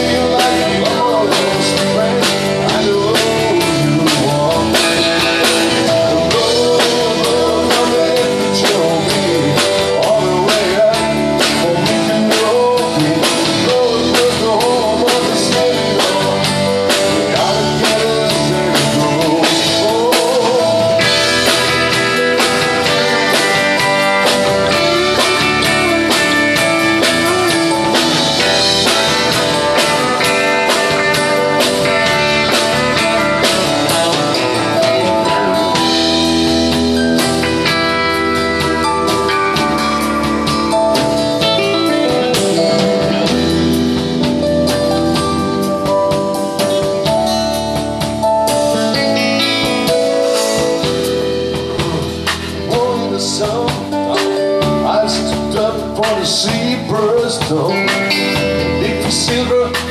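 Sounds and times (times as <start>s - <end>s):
acoustic guitar: 0.0s - 59.9s
bass guitar: 0.0s - 59.9s
drum kit: 0.0s - 59.9s
electric guitar: 0.0s - 59.9s.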